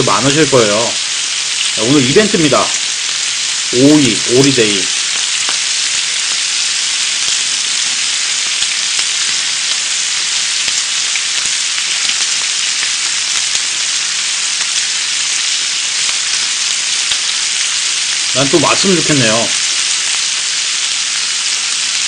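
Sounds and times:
meat sizzling on a grill: 0.0s - 22.0s.

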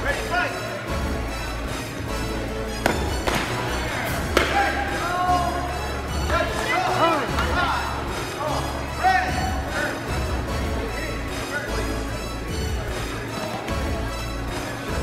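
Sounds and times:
music playing: 0.0s - 15.0s.

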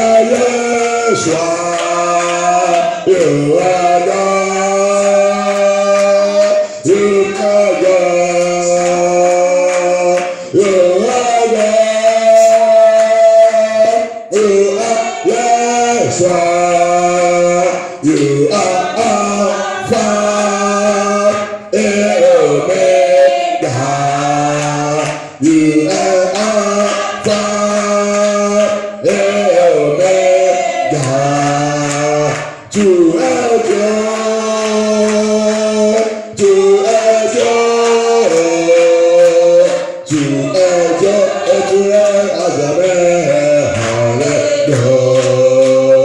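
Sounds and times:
voices singing slowly: 0.0s - 46.0s.

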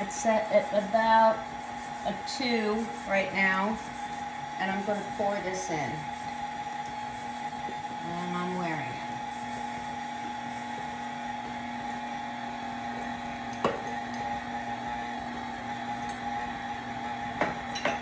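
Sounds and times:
stand mixer motor whining: 0.0s - 18.0s.

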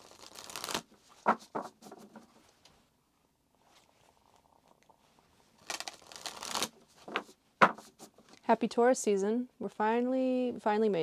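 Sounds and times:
cards being shuffled: 0.0s - 2.3s, 5.6s - 8.4s.

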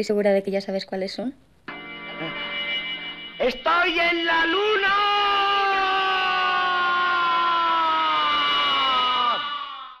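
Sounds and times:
man shouting: 3.7s - 10.0s.

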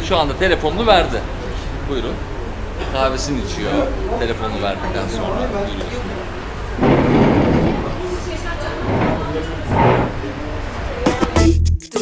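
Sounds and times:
indistinct voices talking: 0.3s - 11.4s
noisy burst: 6.2s - 10.8s.

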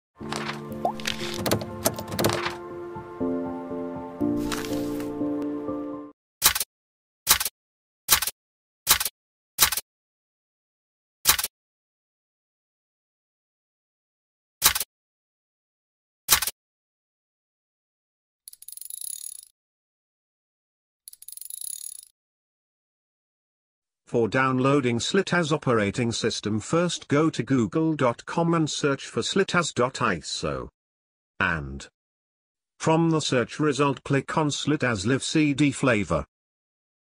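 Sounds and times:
sustained music chords: 0.7s - 4.4s.

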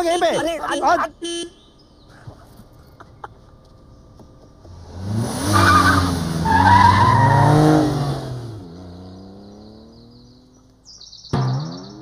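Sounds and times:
car tyres screeching: 0.0s - 10.7s
car engine revving: 3.7s - 12.0s.

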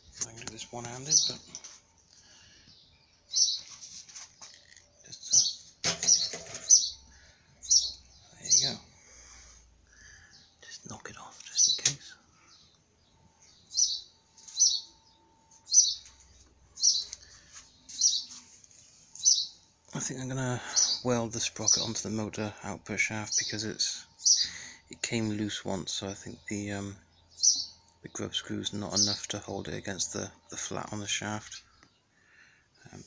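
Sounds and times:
small bird chirping: 0.0s - 20.0s, 20.6s - 22.0s, 23.3s - 24.9s, 26.2s - 30.7s.

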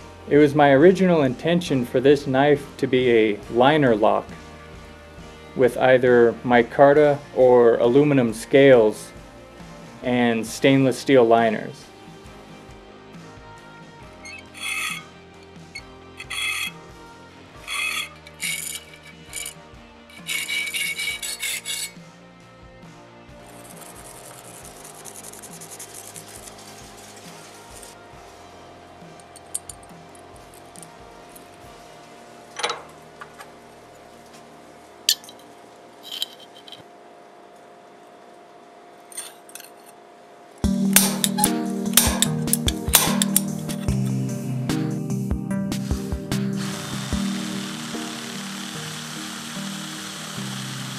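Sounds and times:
background music: 0.0s - 35.3s, 40.6s - 50.9s
hand file rasping on metal: 14.3s - 15.1s, 15.8s - 16.8s, 17.6s - 22.0s, 23.5s - 28.0s
loud continuous machine noise: 17.7s - 22.0s, 46.6s - 50.9s.

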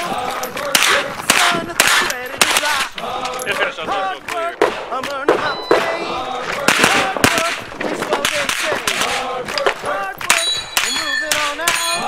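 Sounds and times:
carbine gunshots: 0.3s - 12.0s.

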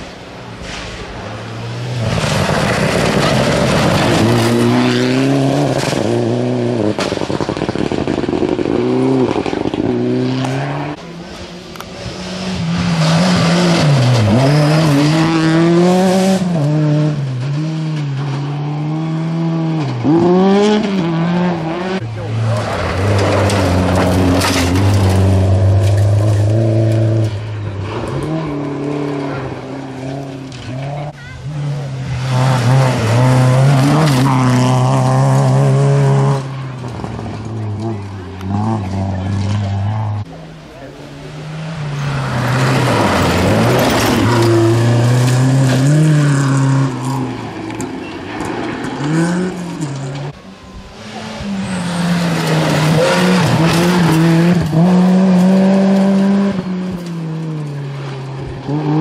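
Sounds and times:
rally cars revving past: 0.6s - 59.0s.

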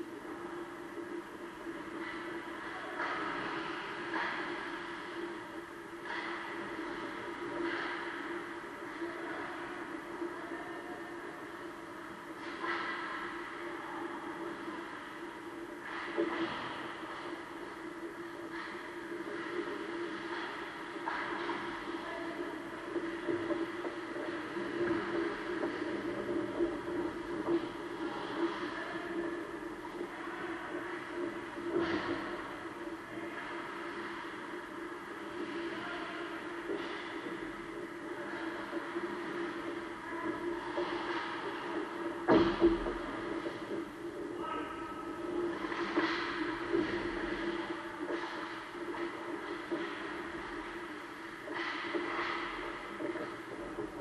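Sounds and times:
skates and sticks on ice: 0.0s - 54.0s.

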